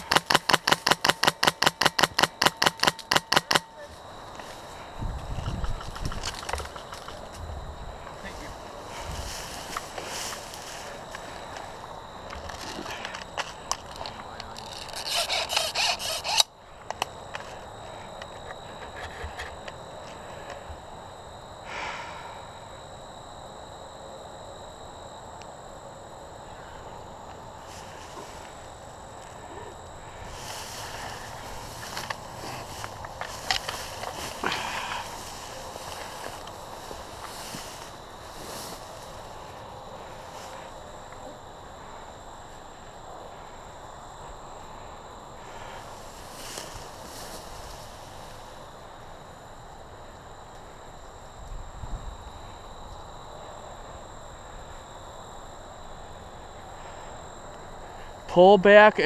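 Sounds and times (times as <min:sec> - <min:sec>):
airsoft rifle full-auto burst: 0:00.0 - 0:03.7, 0:14.9 - 0:16.5
rustling through tall grass: 0:00.0 - 0:13.1, 0:27.5 - 0:29.4, 0:30.0 - 0:41.0, 0:45.4 - 0:49.2.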